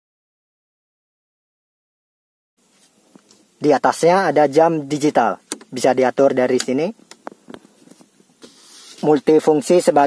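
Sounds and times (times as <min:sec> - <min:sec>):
hand sliding across plastic: 0:07.5 - 0:09.4.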